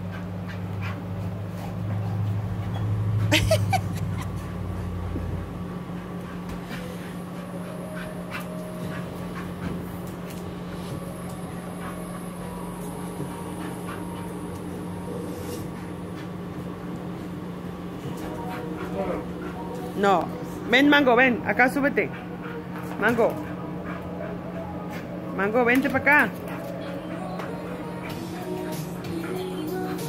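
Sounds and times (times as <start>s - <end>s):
dog whimpering and panting: 0.0s - 5.0s, 5.9s - 16.7s, 17.9s - 30.0s
steady low hum: 0.0s - 30.0s.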